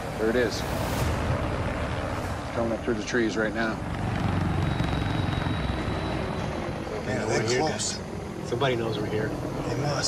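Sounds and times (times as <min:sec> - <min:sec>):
helicopter rotor chopping: 0:00.0 - 0:10.0
high helicopter whine: 0:00.0 - 0:10.0.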